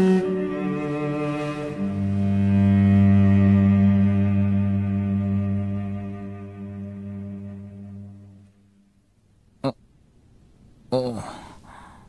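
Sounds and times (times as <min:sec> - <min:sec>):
low sustained music note: 0:00.0 - 0:08.9.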